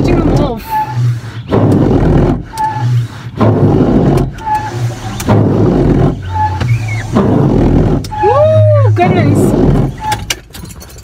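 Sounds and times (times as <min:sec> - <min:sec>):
steady low hum: 0:00.0 - 0:10.3
windscreen wipers sweeping: 0:00.0 - 0:10.6
wiper blade squeak: 0:00.0 - 0:11.0.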